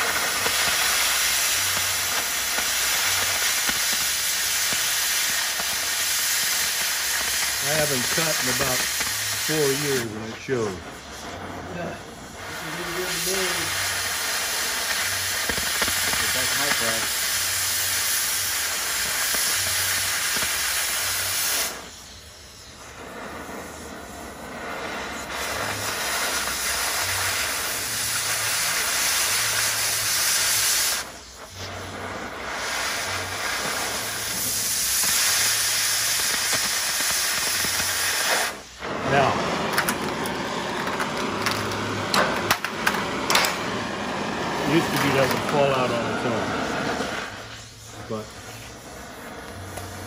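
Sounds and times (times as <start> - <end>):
cutting torch hissing: 0.0 - 50.0.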